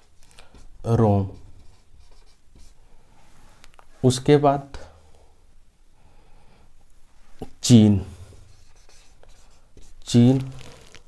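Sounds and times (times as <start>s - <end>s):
marker scratching on whiteboard: 0.0s - 2.8s, 8.3s - 11.0s.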